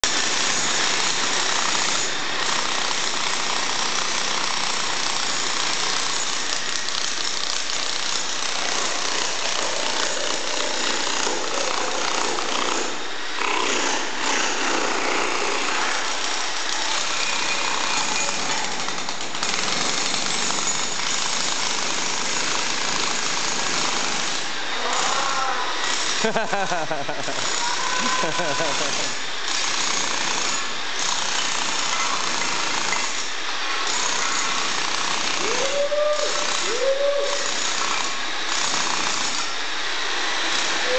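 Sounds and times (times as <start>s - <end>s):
demolition hammer chipping tiles: 0.0s - 35.7s, 37.4s - 40.9s.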